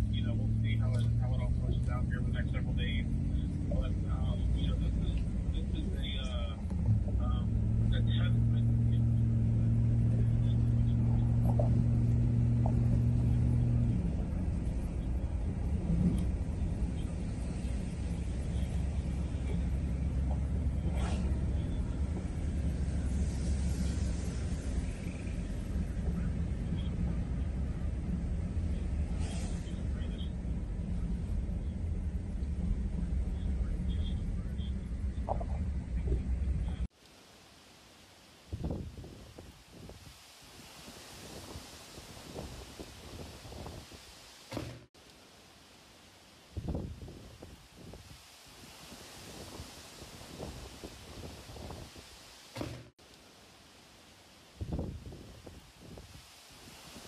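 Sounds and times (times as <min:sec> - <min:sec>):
heavy rain hiss: 0:00.0 - 0:06.6, 0:16.2 - 0:31.6, 0:36.8 - 0:57.0
car interior road rumble: 0:00.0 - 0:36.9, 0:38.5 - 0:40.0, 0:46.5 - 0:48.2, 0:54.6 - 0:56.2
wind buffeting microphone: 0:09.2 - 0:36.9, 0:38.5 - 0:40.2, 0:40.9 - 0:44.1, 0:46.5 - 0:48.2, 0:48.8 - 0:52.8, 0:54.6 - 0:57.0.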